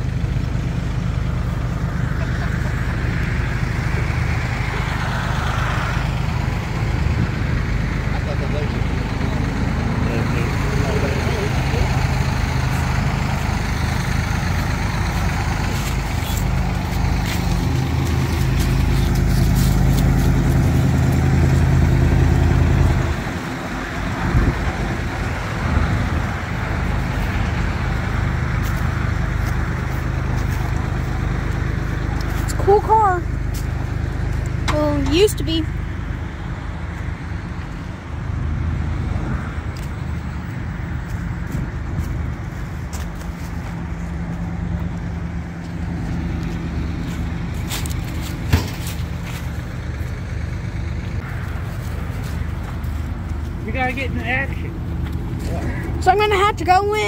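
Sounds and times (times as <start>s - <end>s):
car engine running low hum: 0.0s - 57.0s.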